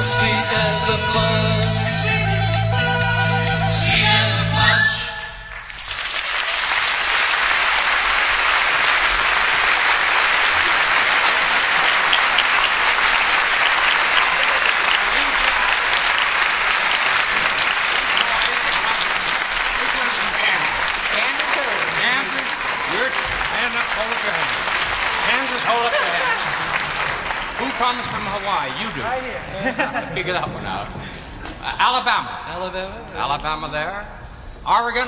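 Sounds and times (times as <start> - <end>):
studio audience applauding: 5.4 - 29.4
man talking: 25.2 - 26.4, 27.6 - 35.0.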